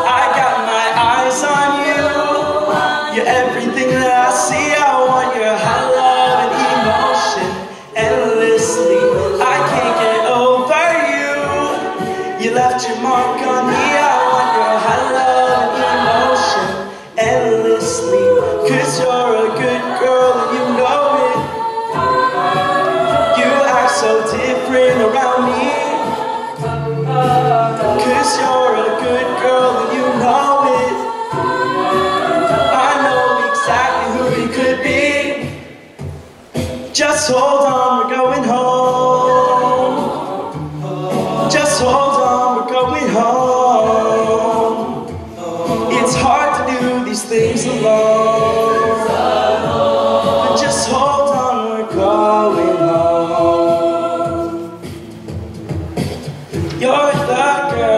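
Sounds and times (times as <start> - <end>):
a cappella group singing in harmony: 0.0 - 57.9
lead singer: 0.0 - 57.9.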